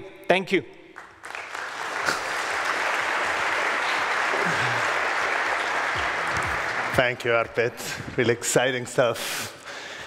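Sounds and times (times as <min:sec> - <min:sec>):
large audience applauding: 0:01.0 - 0:08.2.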